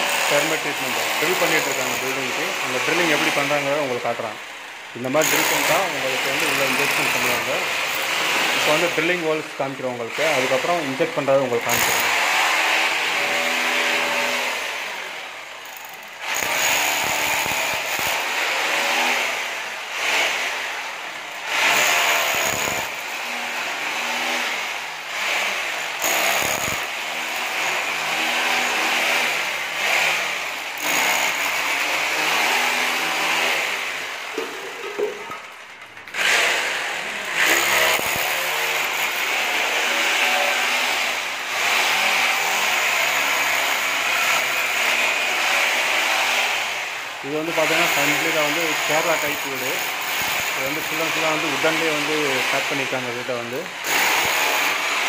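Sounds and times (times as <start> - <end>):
electric drill boring into wall: 0.0 - 9.4, 10.1 - 55.0.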